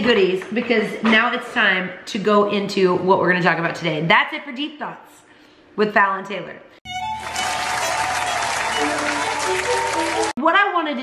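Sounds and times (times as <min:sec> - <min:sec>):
crowd applauding: 0:06.9 - 0:10.4
held musical notes: 0:06.9 - 0:10.4.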